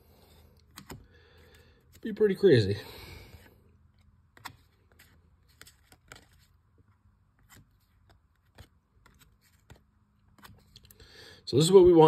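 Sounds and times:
cards flipping clicks: 0.7 - 1.1.

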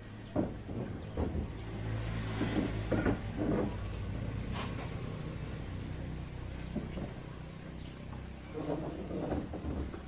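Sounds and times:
vehicle engine running: 0.0 - 9.1.

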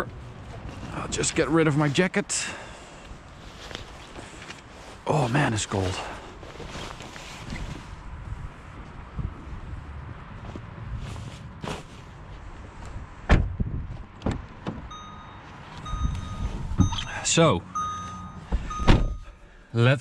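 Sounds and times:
jacket rustling: 3.3 - 8.0
electronic car chime: 14.9 - 19.5.

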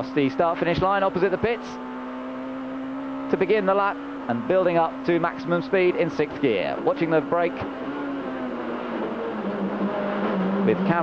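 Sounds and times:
race car engine at high revs: 0.0 - 11.0.

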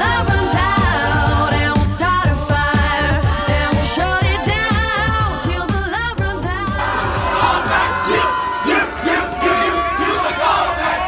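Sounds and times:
group singing: 0.0 - 11.0
crowd shouting and cheering: 6.4 - 11.0.

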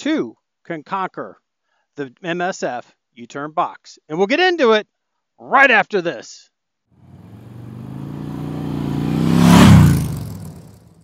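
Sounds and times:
motorcycle engine revving: 7.0 - 11.0.

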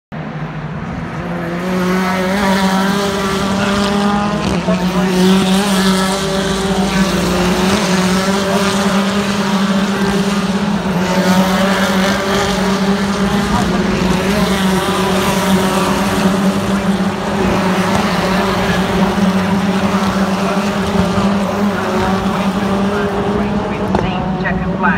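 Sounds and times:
race car engines passing: 0.2 - 24.9.

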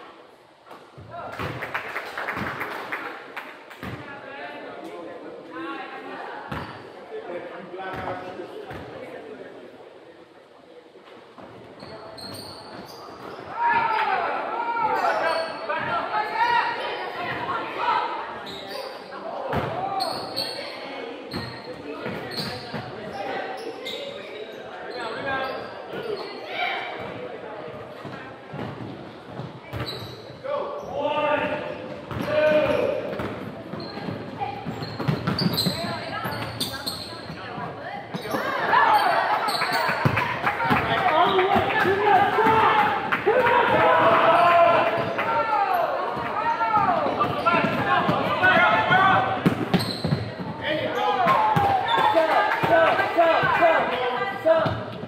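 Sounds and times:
people shouting: 41.8 - 47.1.

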